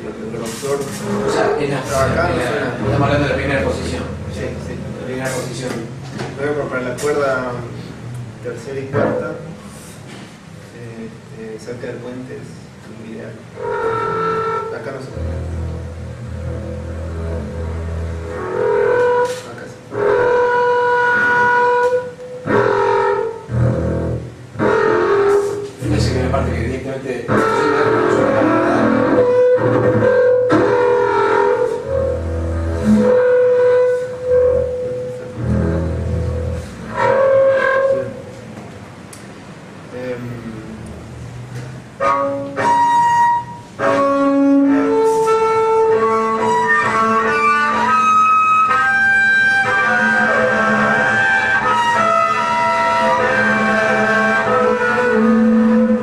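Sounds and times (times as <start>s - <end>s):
bowed double bass: 0.0s - 9.8s, 13.0s - 38.7s, 39.4s - 56.0s.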